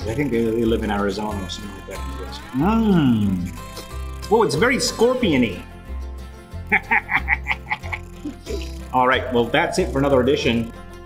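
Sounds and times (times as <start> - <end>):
background music: 0.0 - 11.0
laughter: 6.7 - 8.4.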